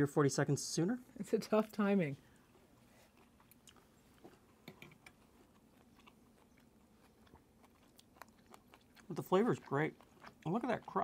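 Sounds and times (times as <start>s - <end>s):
faint chewing: 2.3s - 11.0s.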